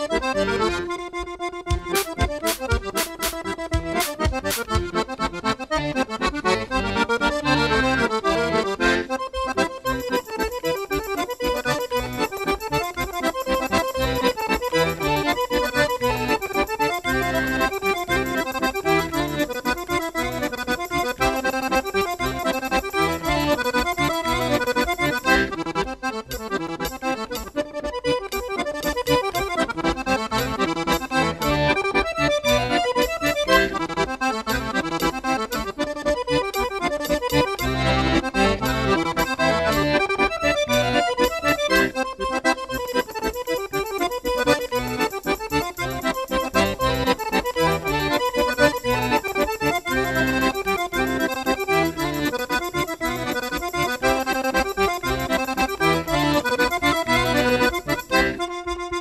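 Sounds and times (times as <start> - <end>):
accordion dance tune: 0.0 - 59.0
steady regular beat: 0.0 - 59.0.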